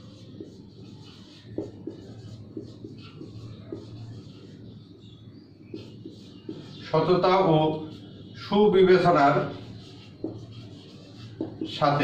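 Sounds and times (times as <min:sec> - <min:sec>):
marker writing on whiteboard: 0:00.0 - 0:12.0.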